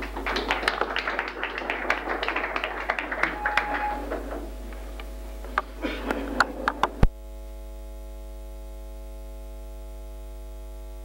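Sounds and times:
audience applauding: 0:00.0 - 0:07.1
steady mains hum: 0:00.0 - 0:11.0.

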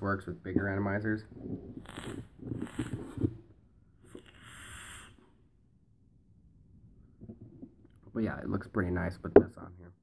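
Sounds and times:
breathy vapor hiss: 0:04.0 - 0:05.5.

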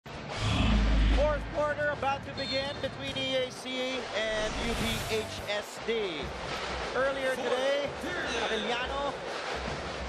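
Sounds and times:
low rumbling whoosh: 0:04.3 - 0:05.5.

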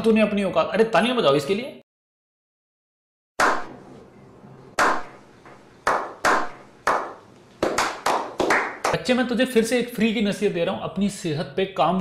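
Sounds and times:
echoing hand claps: 0:03.4 - 0:03.7, 0:04.8 - 0:05.2, 0:05.8 - 0:09.0.

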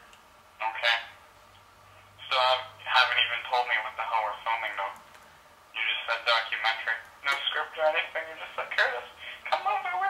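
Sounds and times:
low steady hum: 0:00.0 - 0:10.0
speech over a telephone: 0:00.6 - 0:01.2, 0:02.2 - 0:05.0, 0:05.7 - 0:10.0.

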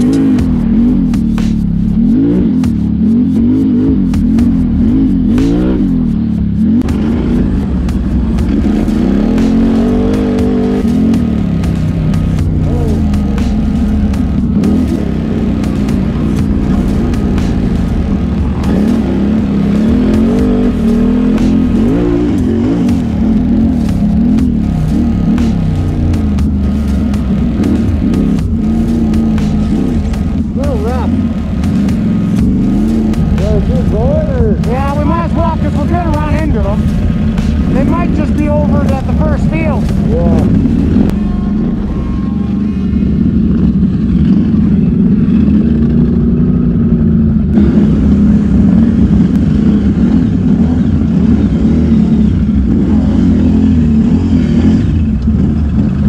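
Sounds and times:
atv engine revving: 0:00.0 - 0:56.0.

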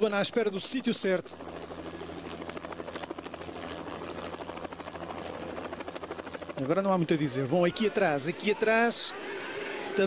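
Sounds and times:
helicopter rotor chopping: 0:00.0 - 0:08.8.

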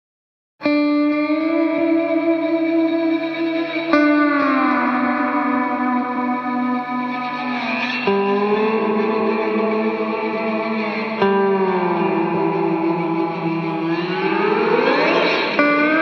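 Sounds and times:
electric guitar chords with reverb: 0:00.6 - 0:16.0.

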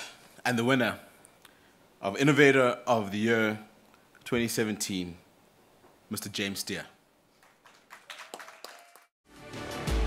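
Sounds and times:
scattered hand claps: 0:07.4 - 0:09.1.

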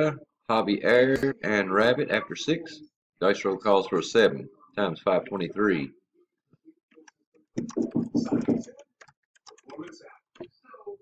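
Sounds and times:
man speaking: 0:00.0 - 0:06.0.

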